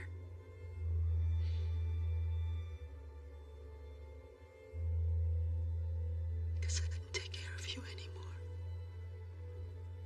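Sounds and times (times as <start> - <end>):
low film score drone: 0.0 - 10.0
breathy whispered voice: 6.6 - 8.6.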